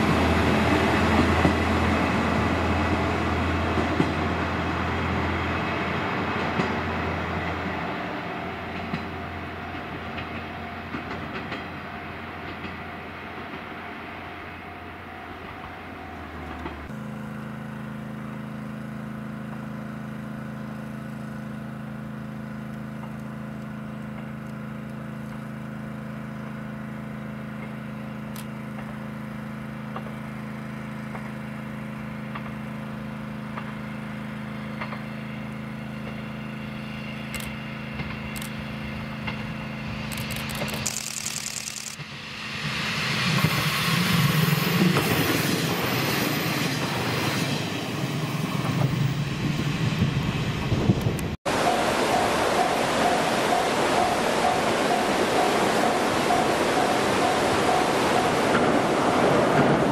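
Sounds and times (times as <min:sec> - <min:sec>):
diesel train passing: 0:00.0 - 0:59.9.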